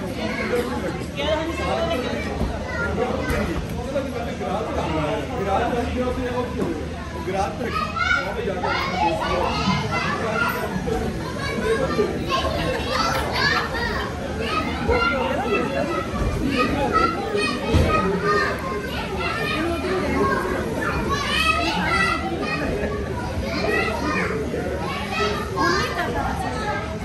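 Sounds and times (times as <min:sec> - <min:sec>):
chatter: 0:00.0 - 0:27.0
children playing and calling out: 0:00.0 - 0:27.0.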